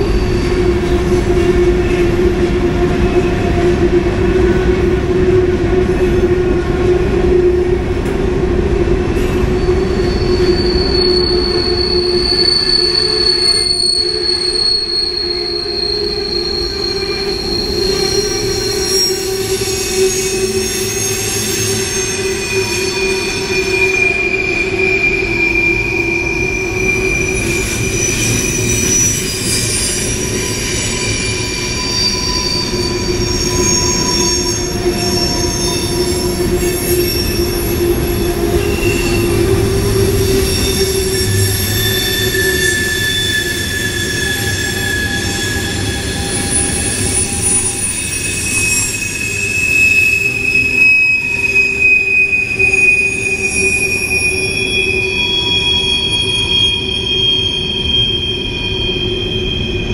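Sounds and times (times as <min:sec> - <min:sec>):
freight train rolling by: 0:00.0 - 0:59.9
train wheels squealing on rails: 0:00.0 - 0:59.9.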